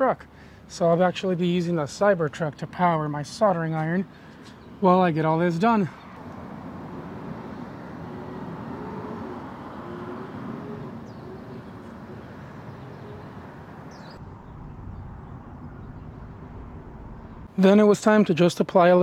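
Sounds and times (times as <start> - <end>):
distant traffic: 0.0 - 19.0.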